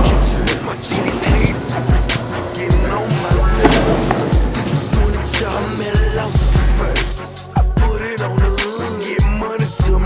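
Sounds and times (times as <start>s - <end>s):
hip-hop music: 0.0s - 10.0s.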